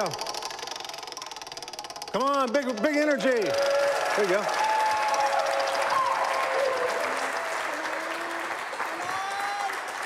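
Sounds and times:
prize wheel pegs clicking: 0:00.0 - 0:09.2.

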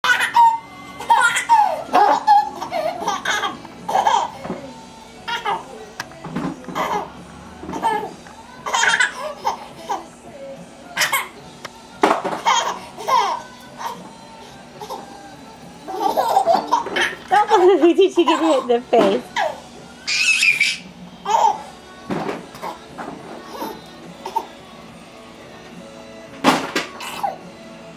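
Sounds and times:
baby giggling: 0:00.0 - 0:04.4, 0:05.3 - 0:05.7, 0:06.7 - 0:07.1, 0:07.7 - 0:10.0, 0:12.4 - 0:14.0, 0:15.9 - 0:18.8, 0:19.4 - 0:21.7.

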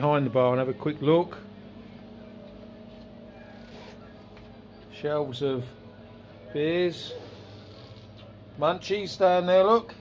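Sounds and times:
low electrical hum of coolers: 0:00.0 - 0:10.0.

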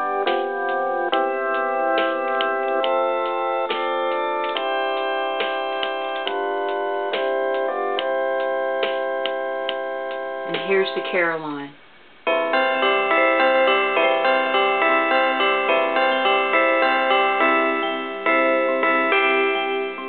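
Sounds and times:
organ chords playing a hymn: 0:00.0 - 0:10.9, 0:12.3 - 0:20.0
regular clicks on the beat: 0:00.0 - 0:11.5, 0:12.2 - 0:20.0.

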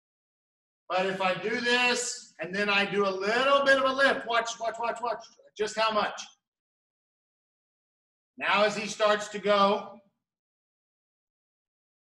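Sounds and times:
voice: 0:00.9 - 0:06.3, 0:08.4 - 0:10.0.

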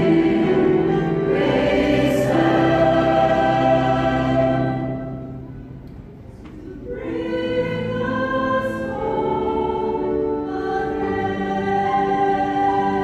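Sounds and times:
church choir singing: 0:00.0 - 0:05.5, 0:06.7 - 0:13.0.

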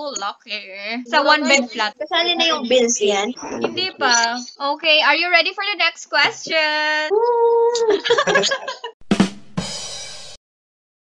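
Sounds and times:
person laughing: 0:03.4 - 0:04.1, 0:07.8 - 0:09.0.

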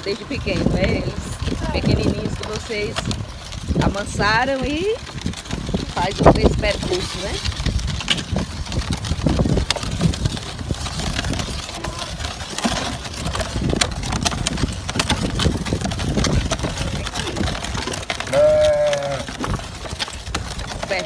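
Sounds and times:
hooves on dirt: 0:00.0 - 0:21.0
wooden cart rumbling on dirt: 0:00.0 - 0:21.0
wooden wheels knocking: 0:00.0 - 0:21.0.

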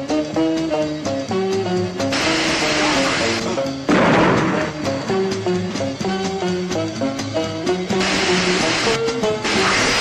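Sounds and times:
sudden noise burst: 0:02.1 - 0:04.8, 0:08.0 - 0:10.0.

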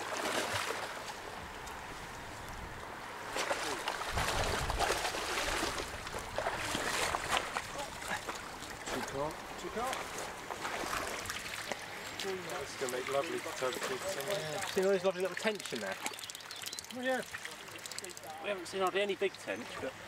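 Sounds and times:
sharp splashes: 0:00.0 - 0:01.2, 0:03.2 - 0:09.2, 0:09.8 - 0:18.4
pond water splashing and sloshing: 0:00.0 - 0:20.0.

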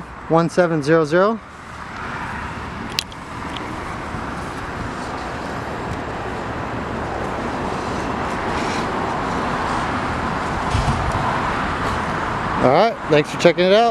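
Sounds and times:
road traffic roar: 0:00.0 - 0:13.9
short low thump: 0:10.7 - 0:11.3.

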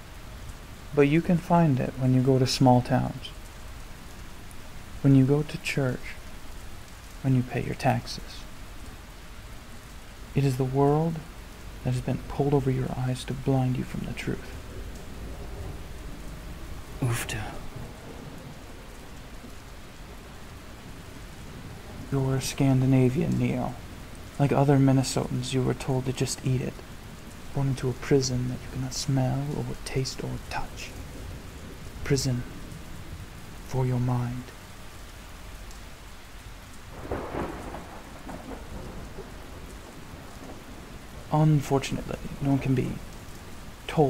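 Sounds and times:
steady rain falling: 0:00.0 - 0:44.0
thunder rumble: 0:10.3 - 0:34.4, 0:36.9 - 0:43.1.

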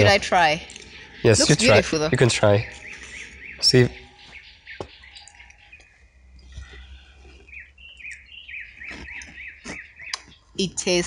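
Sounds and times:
bird calling: 0:00.0 - 0:11.0.

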